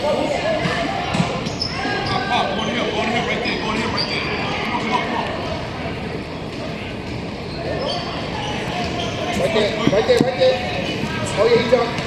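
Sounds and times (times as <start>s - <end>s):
echoing din of sports hall: 0.0s - 12.0s.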